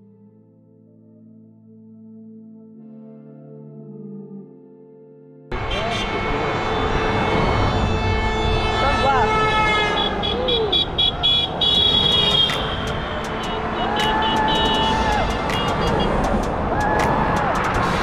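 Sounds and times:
long steady horn blast: 5.5 - 16.2
car horns tooting: 5.5 - 16.5
road traffic noise: 5.5 - 18.0
people calling out: 10.0 - 16.2.

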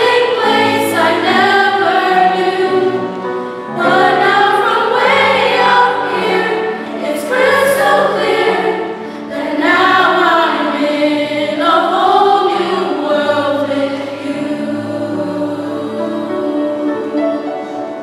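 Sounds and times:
mixed choir singing: 0.0 - 18.0.

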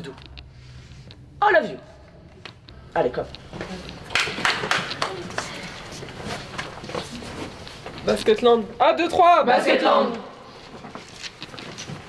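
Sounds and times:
shuffling feet: 3.4 - 8.8
rustling clothes: 3.5 - 8.8, 10.4 - 12.0
hand claps: 3.9 - 5.7.

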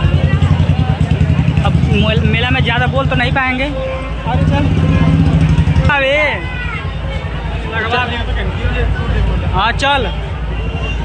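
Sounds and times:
voices of dense crowd: 0.0 - 11.0.

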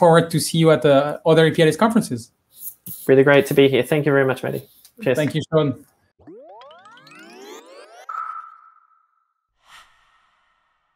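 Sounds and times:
tones sweeping upward: 6.2 - 10.1
high ringing tone: 6.3 - 9.3.

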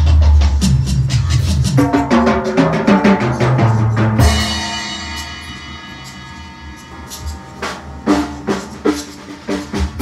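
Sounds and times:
bass drum: 0.0 - 10.0
heavy drum strokes: 0.0 - 10.0.

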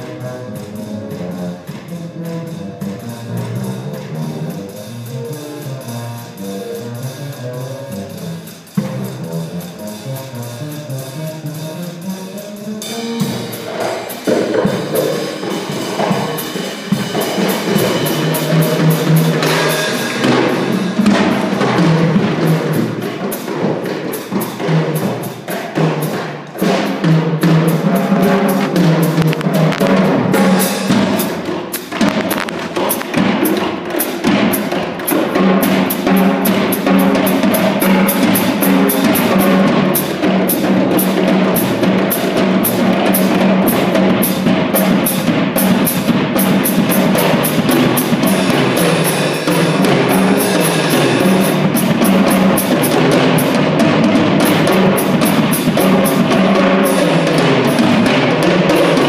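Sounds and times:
plucked upright bass: 0.0 - 13.4, 27.2 - 33.8
drum kit: 0.0 - 59.0
jazz combo playing: 0.0 - 59.0.

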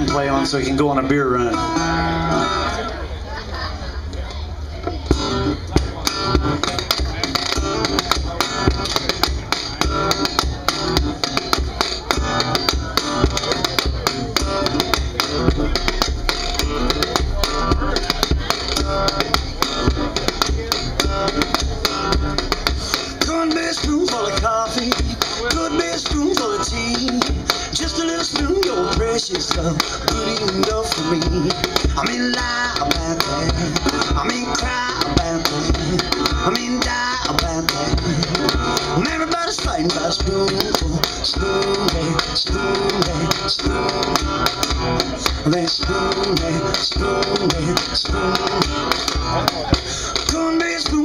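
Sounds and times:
resonator guitar playing blues: 0.0 - 3.1, 4.8 - 51.0
sharp percussive clicks: 5.8 - 32.2.

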